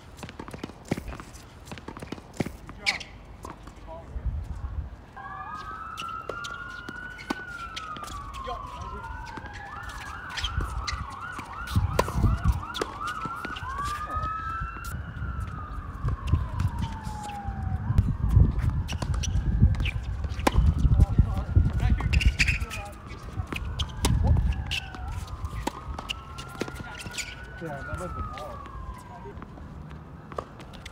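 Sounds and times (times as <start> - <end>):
tennis balls struck by racquets: 0.1 - 3.8, 5.6 - 14.9, 18.5 - 28.6
emergency siren wailing: 5.2 - 30.9.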